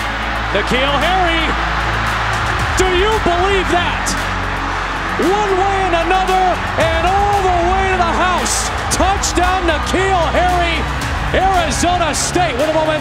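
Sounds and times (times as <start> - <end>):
stadium music: 0.0 - 13.0.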